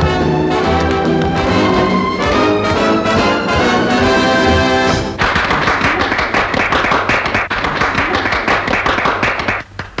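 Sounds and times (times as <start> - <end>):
hands clapping in applause: 5.2 - 10.0.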